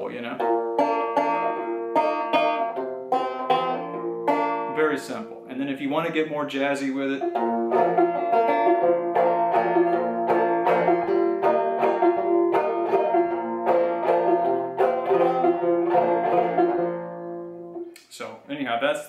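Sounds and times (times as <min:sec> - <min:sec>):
banjo picking: 0:00.0 - 0:17.9.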